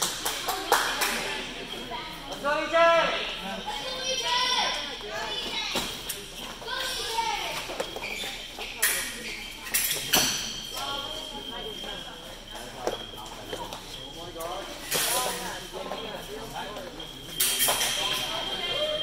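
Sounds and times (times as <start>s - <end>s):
background voices talking: 0.0s - 19.0s
fencing blades clacking: 6.8s - 11.3s, 14.8s - 16.4s, 17.0s - 19.0s.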